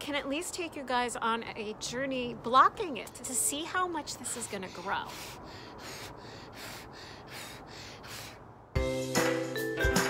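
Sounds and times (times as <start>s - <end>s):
child's breathy mouth puffs: 5.1s - 8.5s.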